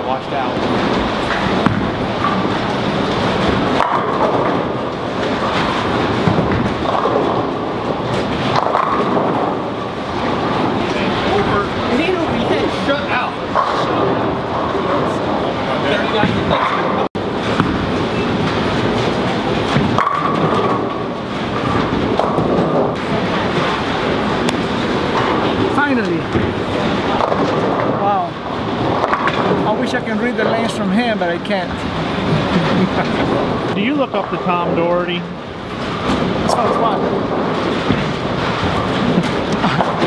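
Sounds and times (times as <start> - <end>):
bowling balls rolling: 0.0 - 40.0
voices chatting: 10.3 - 17.1, 23.0 - 35.4.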